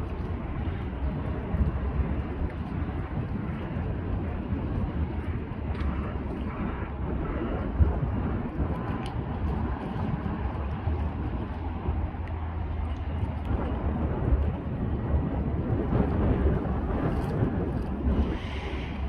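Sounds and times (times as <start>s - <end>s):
diesel engines droning: 0.0s - 19.0s
wind rumbling on microphone: 0.0s - 19.0s.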